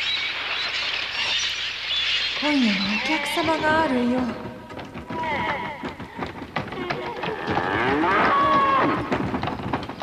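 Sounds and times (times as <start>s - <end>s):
animal cries: 7.0s - 9.1s.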